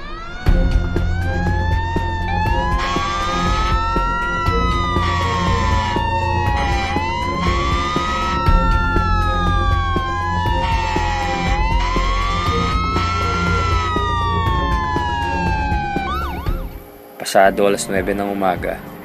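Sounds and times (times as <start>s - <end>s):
low rumble of traffic: 0.0s - 16.8s
emergency sirens wailing: 0.0s - 16.9s.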